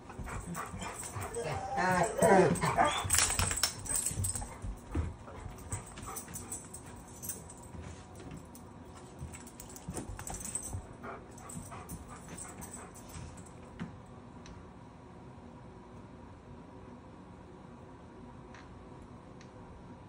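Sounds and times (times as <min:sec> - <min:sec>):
collar tags jingling: 0:00.0 - 0:13.6
dog claws clicking: 0:00.1 - 0:07.5.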